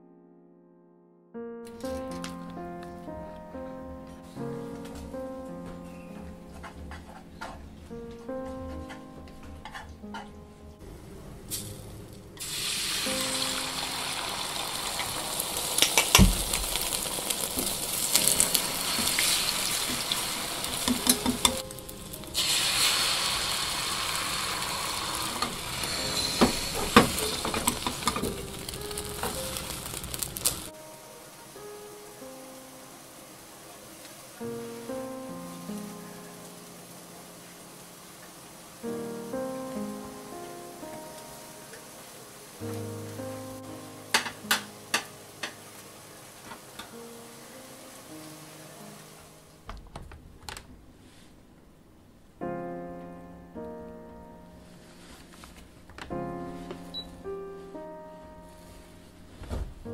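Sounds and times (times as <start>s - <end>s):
soft background music: 1.4s - 10.9s, 12.6s - 49.7s, 52.4s - 59.9s
egg batter sizzling in pan: 12.4s - 30.7s
utensils tapping pan: 15.8s - 16.9s, 20.8s - 21.7s, 25.4s - 30.5s, 44.1s - 45.6s.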